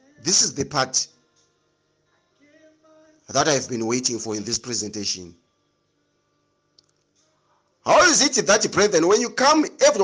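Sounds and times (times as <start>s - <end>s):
man speaking: 0.2s - 1.1s, 3.3s - 5.3s, 7.9s - 10.0s.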